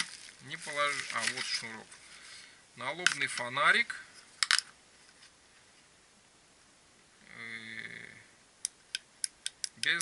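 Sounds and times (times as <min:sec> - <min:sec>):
man humming hesitantly: 0:07.2 - 0:08.3
sharp plastic clicks: 0:08.6 - 0:10.0.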